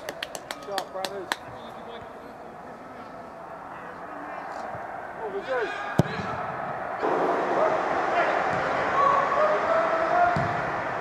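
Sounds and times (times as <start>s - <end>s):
players shouting: 3.2s - 11.0s.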